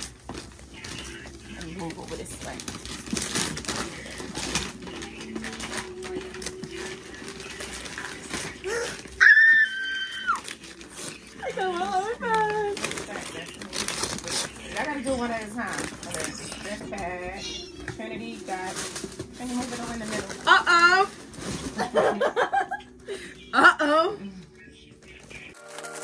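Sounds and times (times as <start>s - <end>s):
wrapping paper tearing and crinkling: 0.0s - 22.1s, 25.0s - 26.0s
high squeal of excitement: 9.2s - 10.4s.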